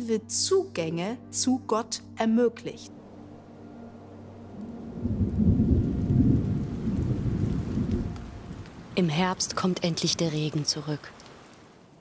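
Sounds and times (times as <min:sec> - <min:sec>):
low rumble of thunder: 0:04.5 - 0:10.2.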